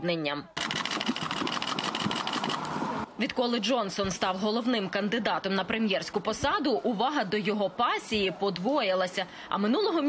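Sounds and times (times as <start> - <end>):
street noise: 0.0 - 10.0
rapid mechanical clicking: 0.6 - 2.7.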